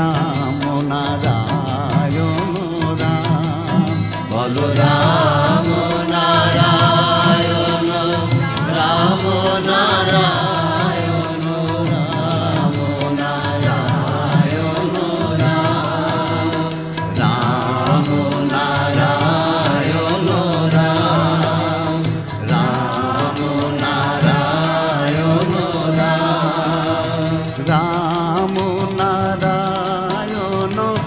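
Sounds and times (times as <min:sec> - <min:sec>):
devotional music: 0:00.0 - 0:31.0.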